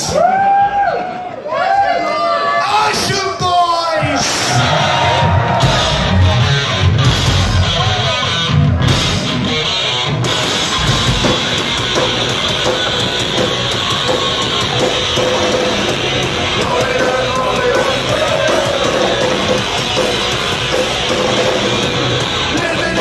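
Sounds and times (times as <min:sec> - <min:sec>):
crowd: 0:00.0 - 0:23.0
punk rock band playing live: 0:04.6 - 0:23.0.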